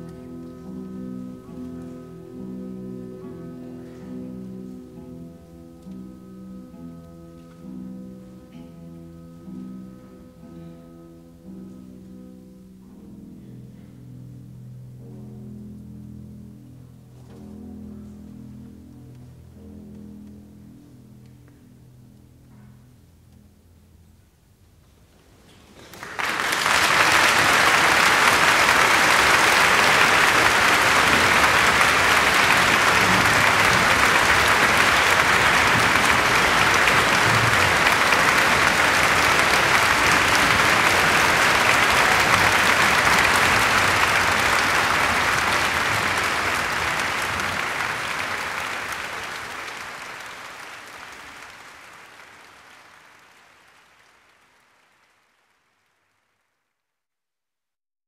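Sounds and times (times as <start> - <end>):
audience applauding: 25.7 - 56.2.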